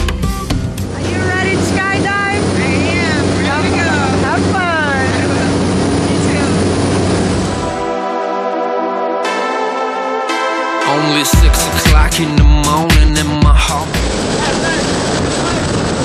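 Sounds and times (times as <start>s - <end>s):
music: 0.0s - 5.2s, 6.0s - 14.5s
light aircraft engine drone: 0.8s - 7.9s, 13.9s - 16.0s.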